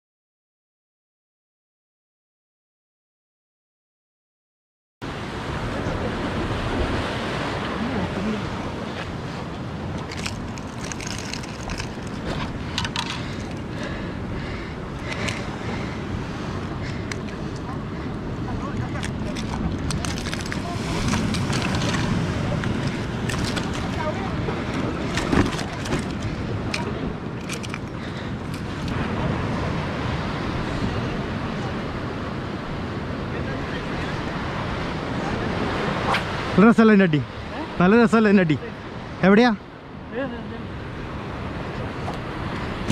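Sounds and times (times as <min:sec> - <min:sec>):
surf breaking on rocks: 0:05.1 - 0:31.5
wind buffeting microphone: 0:05.1 - 0:36.6, 0:39.9 - 0:42.9.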